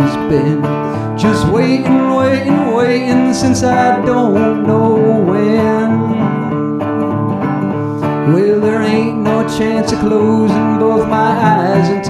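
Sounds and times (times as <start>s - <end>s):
resonator guitar playing chords: 0.0s - 12.0s.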